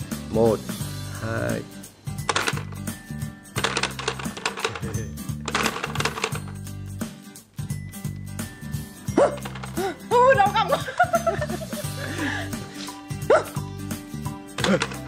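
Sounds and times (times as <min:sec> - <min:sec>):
plastic toy clattering: 0:02.3 - 0:02.9, 0:03.6 - 0:06.6, 0:09.4 - 0:09.8, 0:14.6 - 0:15.0
buttons jabbed rapidly: 0:03.6 - 0:06.6
laughter: 0:10.5 - 0:12.6.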